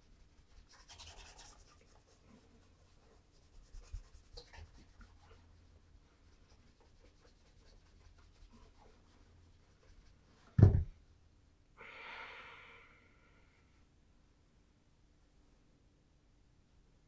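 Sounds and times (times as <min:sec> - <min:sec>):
soft knocks: 0:10.6 - 0:11.0.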